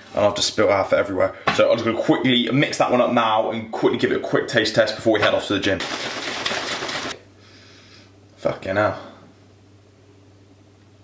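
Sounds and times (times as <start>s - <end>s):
shaker bottle sloshing rattle: 5.8s - 7.2s.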